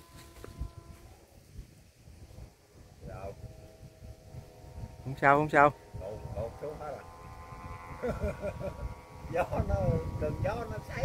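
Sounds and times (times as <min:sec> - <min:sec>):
wind rumble on microphone: 0:00.0 - 0:11.0
distant voices talking: 0:03.0 - 0:11.0.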